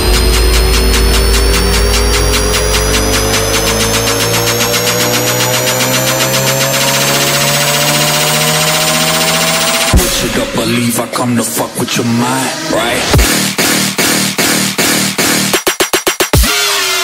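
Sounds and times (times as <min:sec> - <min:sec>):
synth tone rising in pitch: 0:00.0 - 0:13.5
heavy bass: 0:00.0 - 0:15.7.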